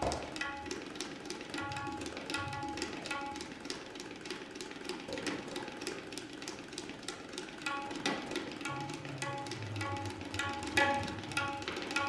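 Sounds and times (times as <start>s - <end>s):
tabla rapid strokes: 0.0s - 12.0s.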